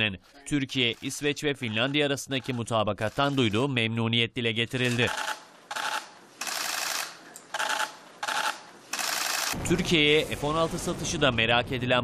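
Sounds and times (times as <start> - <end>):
camera shutters clicking: 4.8 - 9.6.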